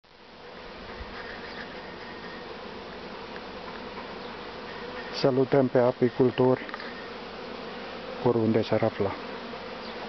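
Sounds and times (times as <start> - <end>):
honeybees buzzing: 0.1 - 10.0.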